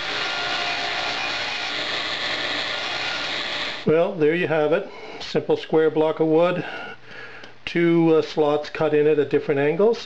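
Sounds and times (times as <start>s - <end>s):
table saw cutting wood: 0.0s - 3.9s.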